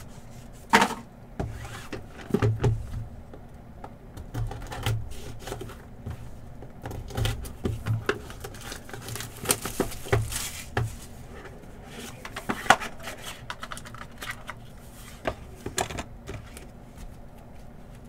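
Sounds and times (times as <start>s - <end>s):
card stock tapping and scraping: 4.2s - 18.0s.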